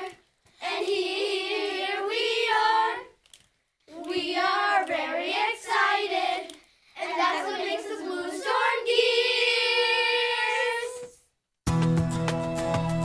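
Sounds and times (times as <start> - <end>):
children singing: 0.0 - 3.2, 3.9 - 11.2.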